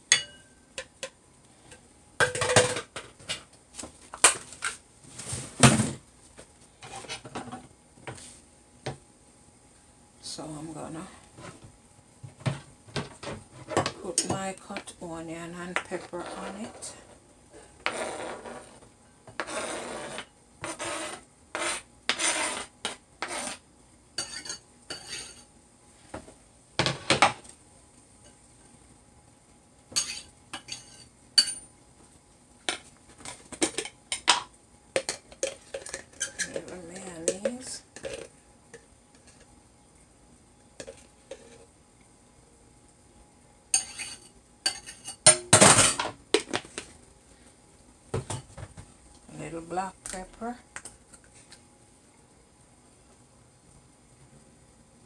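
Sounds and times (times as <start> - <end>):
clinks of bowl and utensils: 0.1 - 3.0, 29.9 - 31.7, 32.7 - 39.5, 43.8 - 46.5
knife scraping cutting board: 19.4 - 23.6, 24.2 - 25.4.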